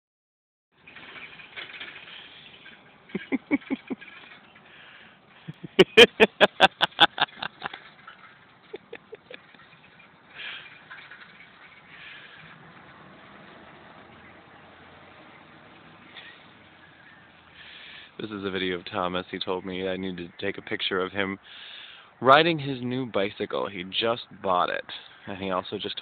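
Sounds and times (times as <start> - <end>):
van engine humming: 0.8 - 20.4.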